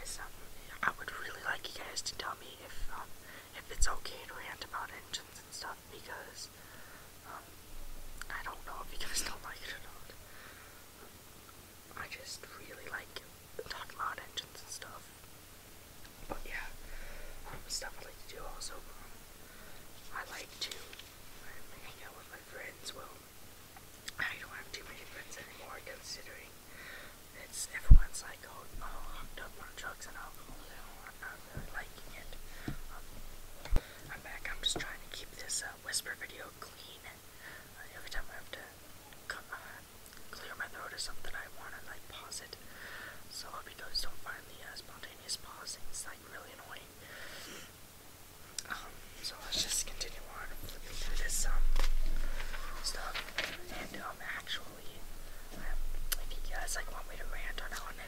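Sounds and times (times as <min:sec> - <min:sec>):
person whispering: 0:00.0 - 0:06.6, 0:08.2 - 0:10.2, 0:11.9 - 0:15.1, 0:16.3 - 0:16.8, 0:17.4 - 0:19.2, 0:20.1 - 0:23.2, 0:24.1 - 0:26.6, 0:27.4 - 0:33.1, 0:34.1 - 0:42.6, 0:43.3 - 0:47.6, 0:48.6 - 0:58.0.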